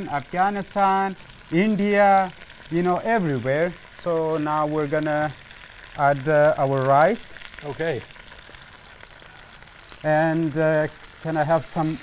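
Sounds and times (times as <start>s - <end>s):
oil sizzling in a pot: 0.0s - 12.0s.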